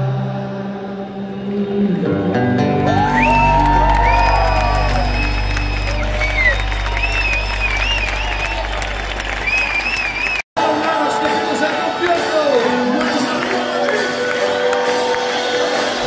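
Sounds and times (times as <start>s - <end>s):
live band low drone: 0.0s - 16.0s
crowd cheering and applauding: 2.8s - 16.0s.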